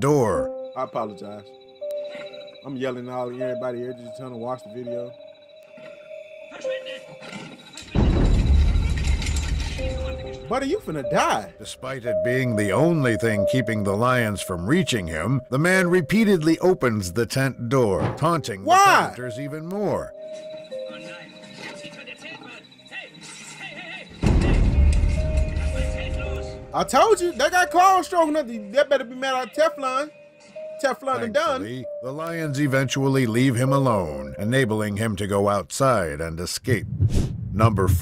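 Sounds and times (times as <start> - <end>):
faint music: 0.0 - 36.2.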